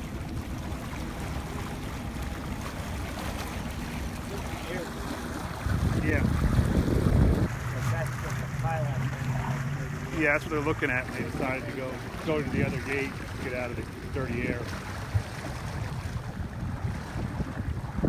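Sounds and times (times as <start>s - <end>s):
low steady hum: 0.0s - 18.0s
water washing around boat: 0.0s - 18.0s
wind rushing over microphone: 5.5s - 10.1s, 14.2s - 18.0s.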